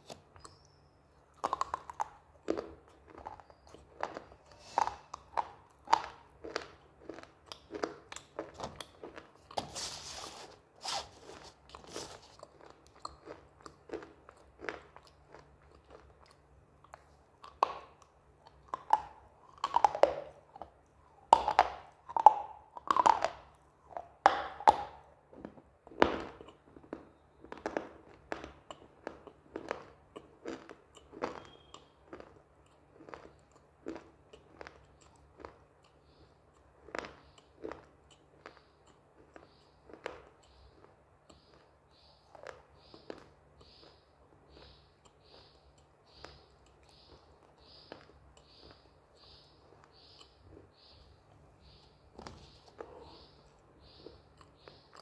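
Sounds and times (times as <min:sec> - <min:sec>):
crunching and chewing: 0:00.0 - 0:55.0.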